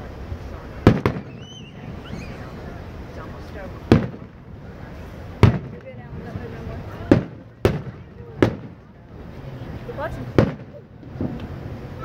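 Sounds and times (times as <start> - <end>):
firework shells booming: 0.8 - 1.8, 3.8 - 4.6, 5.3 - 6.3, 7.0 - 9.0, 10.3 - 11.6.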